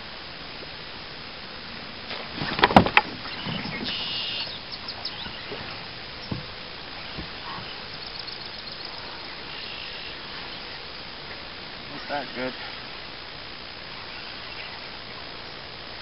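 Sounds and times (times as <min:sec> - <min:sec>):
open-water ambience: 0:00.0 - 0:16.0
faint bird chirps: 0:03.2 - 0:06.4, 0:07.0 - 0:10.9, 0:13.9 - 0:15.6
short high buzzes: 0:03.2 - 0:08.7.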